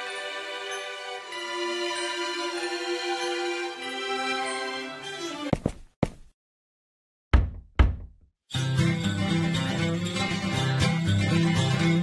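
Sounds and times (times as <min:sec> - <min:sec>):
guitar music: 0:08.5 - 0:12.0.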